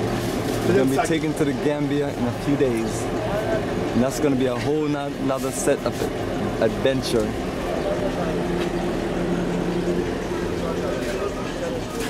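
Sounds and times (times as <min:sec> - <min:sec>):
faint voices: 0:00.0 - 0:12.0
minibus engine idling: 0:00.0 - 0:12.0.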